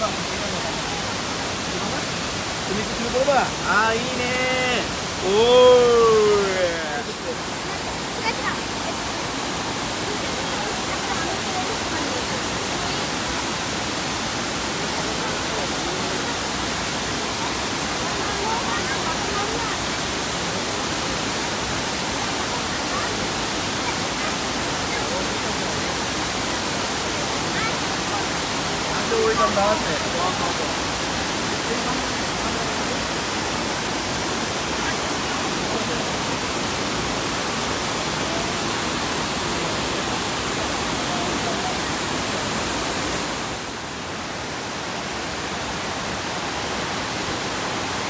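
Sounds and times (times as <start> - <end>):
waterfall rushing: 0.0 - 48.0.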